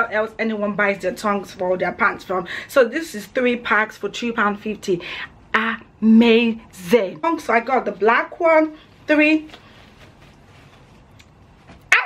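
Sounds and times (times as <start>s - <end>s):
faint room noise: 0.0s - 12.0s.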